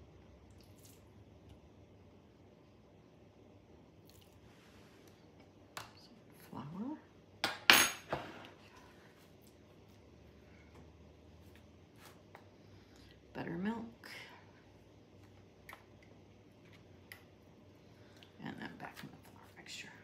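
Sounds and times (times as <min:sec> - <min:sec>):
kitchen utensils clattering: 0:07.6 - 0:08.4.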